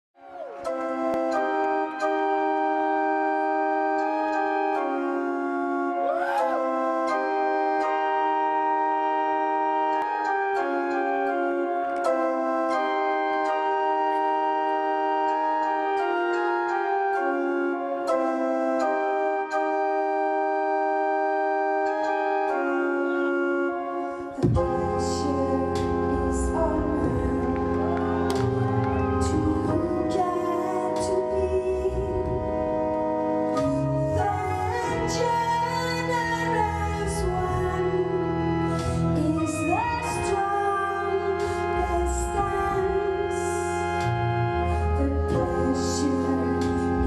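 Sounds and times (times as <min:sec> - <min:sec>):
electronic keyboard chords: 0:00.2 - 0:47.0.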